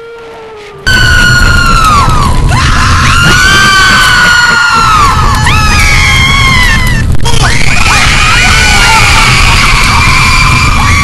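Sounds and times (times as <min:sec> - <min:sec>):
dense low rumble: 0:00.9 - 0:11.0
many voices screaming and wailing: 0:00.9 - 0:11.0.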